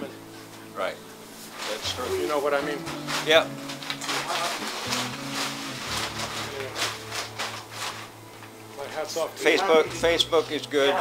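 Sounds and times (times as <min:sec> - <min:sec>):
faint background voices: 0:00.0 - 0:07.9.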